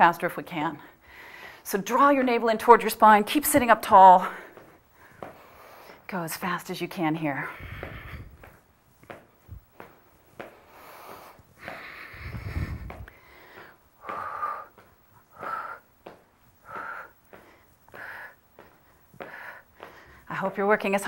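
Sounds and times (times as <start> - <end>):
noisy low rumble: 11.8 - 13.3.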